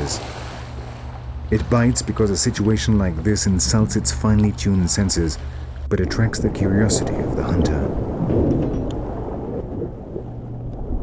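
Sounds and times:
churning water underwater: 0.0s - 11.0s
faint steady hum: 0.0s - 11.0s.

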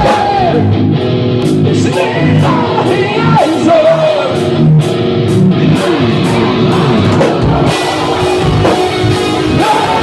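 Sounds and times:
distorted electric guitars: 0.0s - 10.0s
drum kit: 0.0s - 10.0s.

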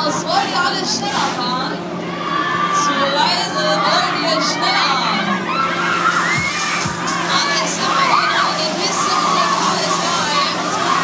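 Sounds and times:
steady low hum: 0.0s - 11.0s
people shouting and screaming: 1.9s - 11.0s.

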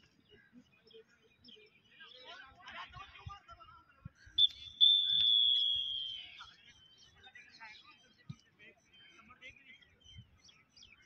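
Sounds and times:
referee's whistle: 4.4s - 6.6s.

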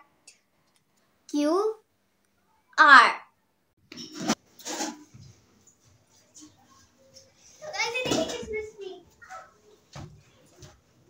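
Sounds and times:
child's footsteps on rug: 7.8s - 11.0s.

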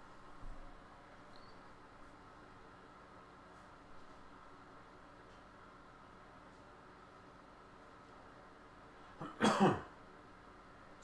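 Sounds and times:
person clearing throat: 9.2s - 9.9s.

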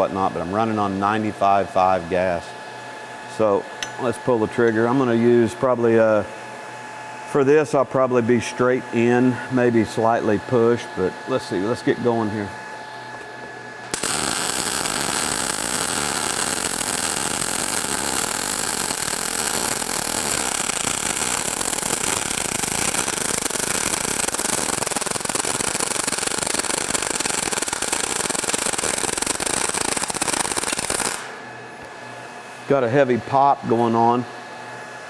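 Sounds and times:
welding arc crackling: 13.8s - 31.5s.

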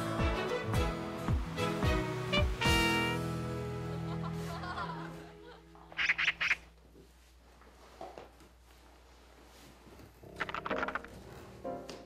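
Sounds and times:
harsh bird squawks: 5.9s - 6.7s.

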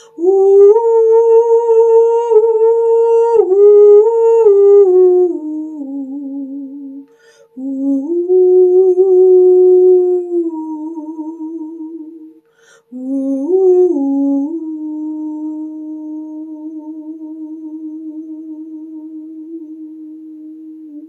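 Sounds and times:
faint steady tone: 0.0s - 21.0s
woman singing wordlessly: 0.0s - 21.0s.

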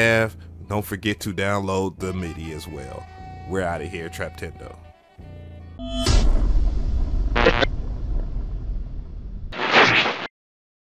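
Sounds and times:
deep low rumble: 6.0s - 9.6s
rushing burst: 6.1s - 10.3s
short sharp burst: 7.2s - 7.9s, 9.5s - 10.3s.

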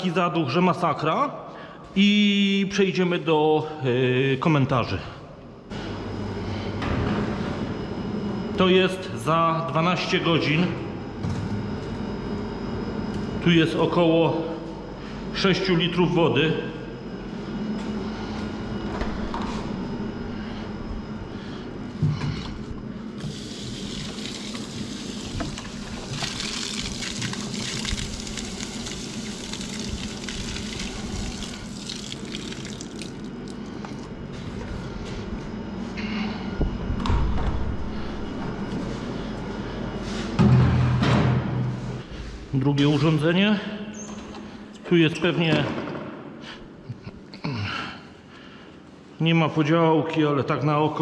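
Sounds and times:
steady low hum: 0.0s - 51.0s
water gushing from tank: 23.2s - 33.6s.

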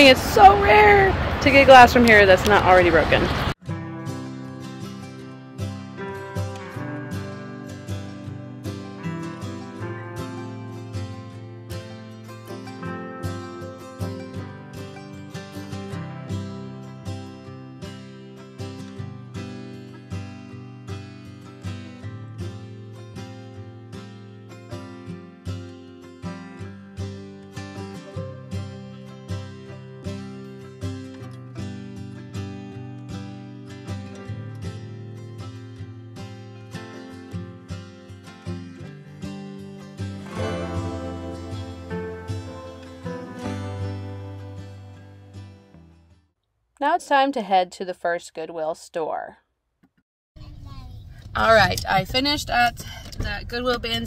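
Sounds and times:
plucked acoustic guitar music: 0.4s - 46.2s.

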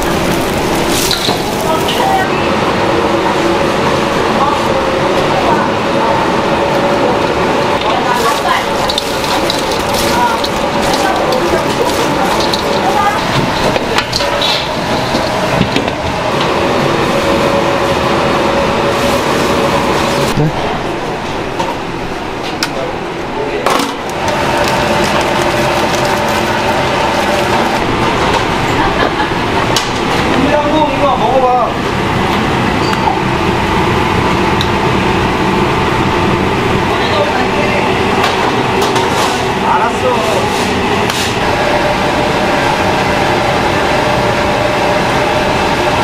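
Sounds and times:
ventilation and burners roaring: 0.0s - 46.0s.

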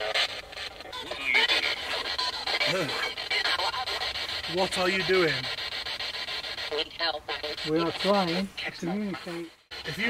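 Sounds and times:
radio hiss chopped into rapid steps: 0.0s - 10.0s
snatches of radio music: 0.0s - 10.0s
snatches of radio voice: 0.0s - 10.0s.

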